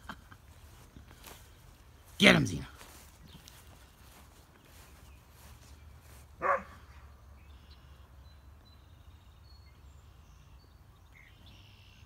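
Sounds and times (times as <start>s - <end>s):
dog barking: 6.4s - 6.8s.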